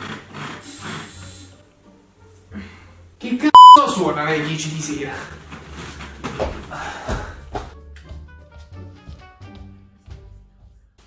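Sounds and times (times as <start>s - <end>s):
background music: 0.4s - 4.1s.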